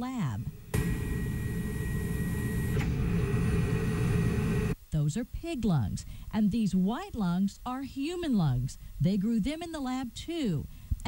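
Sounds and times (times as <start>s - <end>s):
faint high whine: 0.0s - 4.8s
machinery humming: 0.0s - 4.8s.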